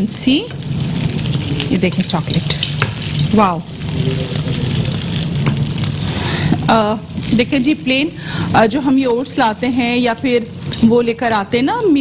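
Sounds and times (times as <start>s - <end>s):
stirring in a pan: 0.0s - 11.4s
food sizzling in oil: 0.0s - 12.0s.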